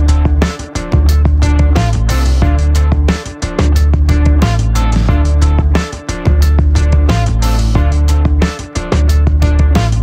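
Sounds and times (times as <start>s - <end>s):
instrumental music with bass: 0.0s - 10.0s.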